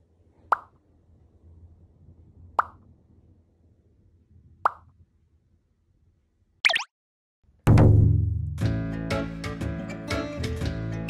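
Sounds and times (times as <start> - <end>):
bright plop sound effects: 6.7 - 6.9.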